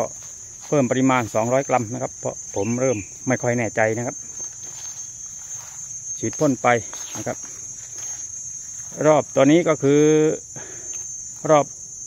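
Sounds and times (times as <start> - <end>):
man talking: 0.0 - 4.2, 6.2 - 7.5, 8.9 - 10.5, 11.4 - 11.7
high-pitched insect chorus: 0.0 - 12.0.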